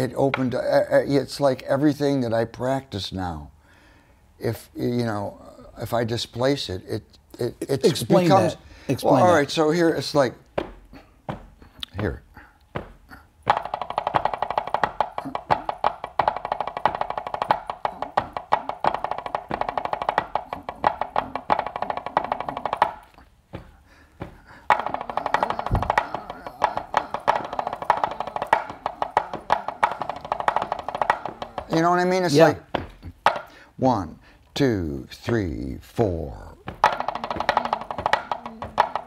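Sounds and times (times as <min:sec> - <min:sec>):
drumsticks tapping practice pad: 0:10.1 - 0:33.6, 0:34.6 - 0:39.0.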